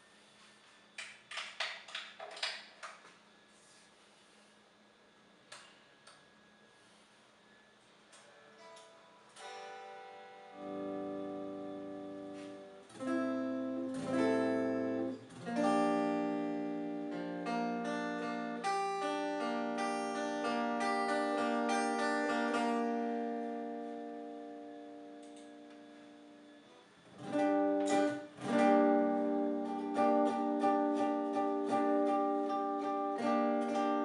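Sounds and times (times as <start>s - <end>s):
electric guitar strumming chords: 8.2s - 34.0s.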